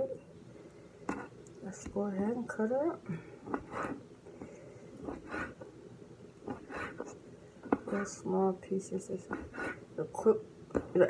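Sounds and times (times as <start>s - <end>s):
person breathing: 3.1s - 5.6s.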